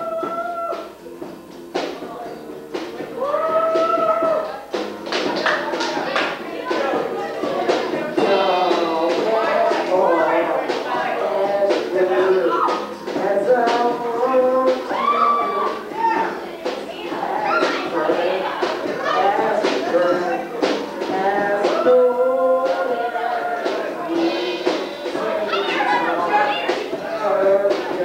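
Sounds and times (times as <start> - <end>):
acoustic guitar chords: 0.0 - 28.0
drum kit: 0.0 - 28.0.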